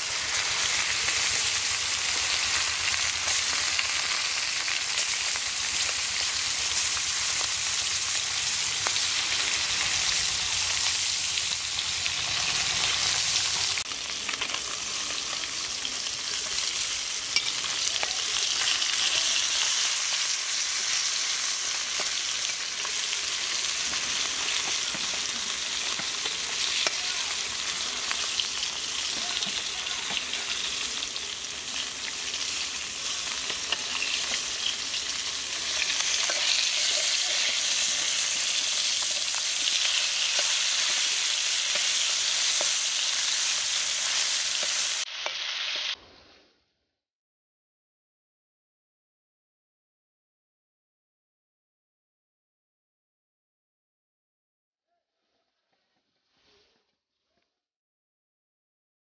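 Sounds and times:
fish sizzling in hot oil: 0.0 - 46.0.

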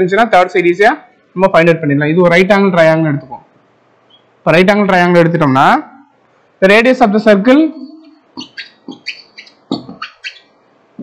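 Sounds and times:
small bird chirping: 4.0 - 4.4, 7.8 - 10.8.

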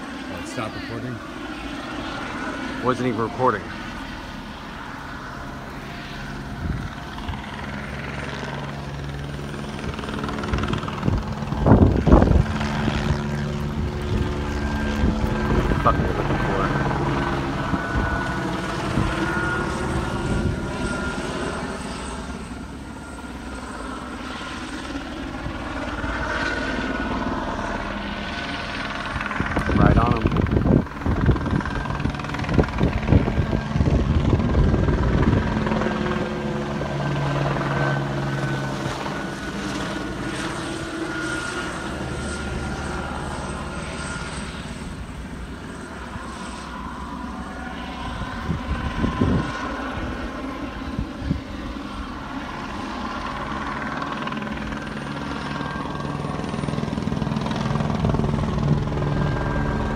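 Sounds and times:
helicopter rotor and engine drone: 0.0 - 59.9.

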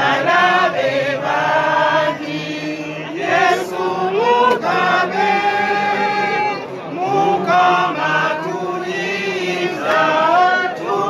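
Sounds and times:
group singing slow chant: 0.0 - 11.0.

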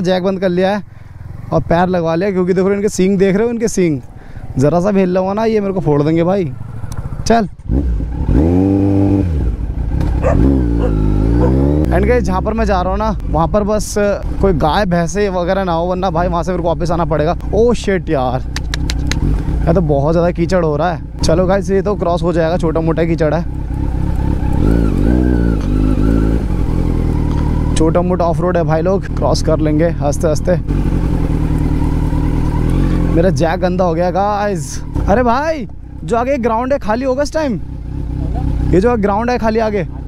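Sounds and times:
motorcycle engine: 0.0 - 40.0.

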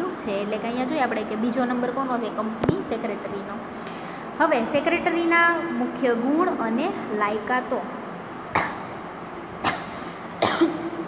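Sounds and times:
woman coughing: 8.5 - 9.0, 9.6 - 11.0.

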